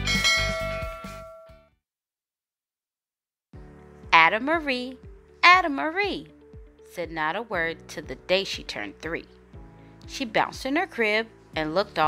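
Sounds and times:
bell chime: 0.0s - 1.6s.

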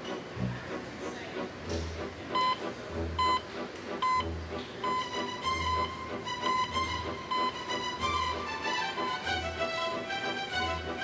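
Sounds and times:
background music with bass thump: 0.0s - 8.5s
short high beeps: 2.4s - 2.6s.

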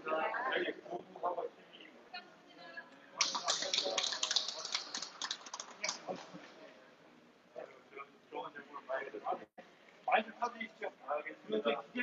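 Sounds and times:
group handclaps: 3.2s - 6.2s.

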